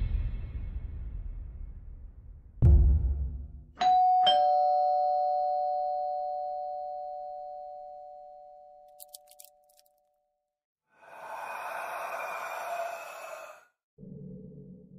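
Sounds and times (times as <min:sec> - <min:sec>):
deep boom: 0:00.0 - 0:03.8
two-tone doorbell chime: 0:03.8 - 0:08.9.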